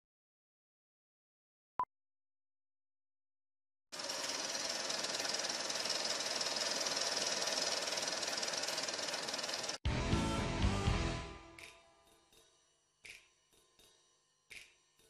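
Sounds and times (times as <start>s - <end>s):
film projector clatter and whir: 3.9s - 9.8s
music with deep bass: 9.9s - 11.5s.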